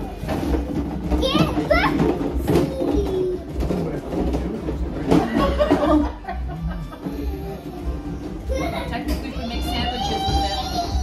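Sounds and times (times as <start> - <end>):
adults' background conversation: 0.0 - 11.0.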